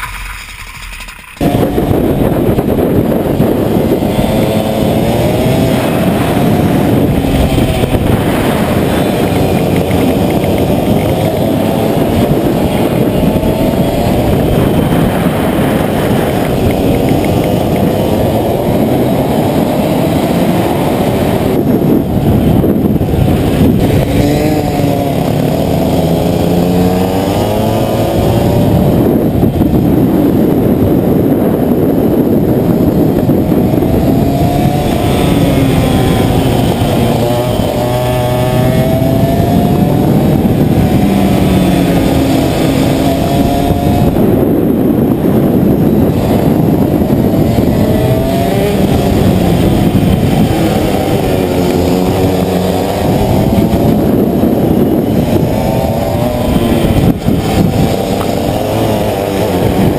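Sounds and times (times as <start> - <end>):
racing kart engines: 0.0 - 59.9.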